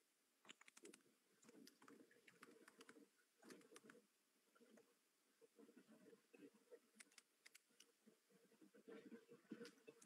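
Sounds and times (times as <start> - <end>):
computer keyboard typing: 0.5 - 1.0, 1.6 - 3.9, 7.0 - 7.9.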